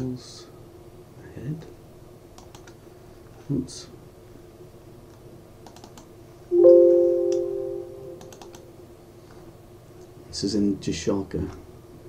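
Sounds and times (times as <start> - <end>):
computer mouse clicks: 2.4 - 2.8, 5.1 - 6.1, 8.2 - 8.6
low steady hum: 6.5 - 8.9.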